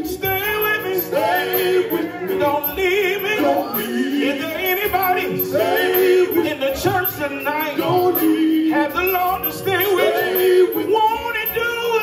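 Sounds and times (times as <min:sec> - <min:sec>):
man singing into a microphone: 0:00.0 - 0:05.6, 0:06.2 - 0:12.0
live band playing: 0:00.0 - 0:12.0.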